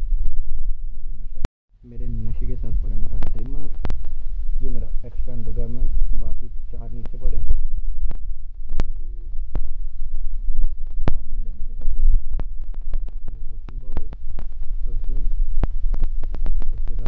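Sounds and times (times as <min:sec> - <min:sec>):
low rumbling throb: 0:00.0 - 0:17.0
muffled voice: 0:01.8 - 0:03.8, 0:04.6 - 0:07.6, 0:11.0 - 0:12.0, 0:13.1 - 0:15.4, 0:16.6 - 0:17.0.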